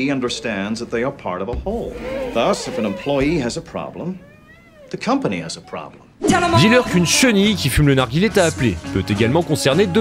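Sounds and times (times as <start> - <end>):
man speaking: 0.0 - 4.2, 4.9 - 10.0
squeegee squeaking on glass: 1.8 - 5.8.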